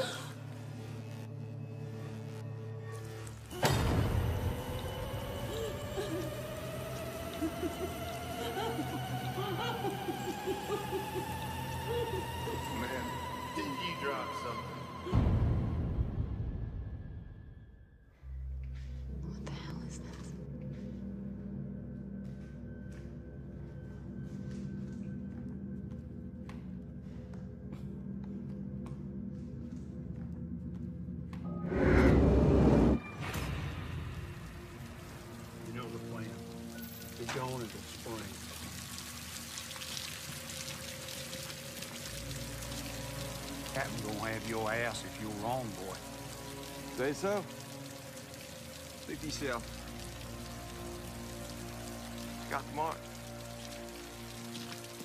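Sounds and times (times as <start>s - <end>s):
droning film score: 0.0s - 55.0s
steady rain: 3.0s - 15.4s, 34.2s - 55.0s.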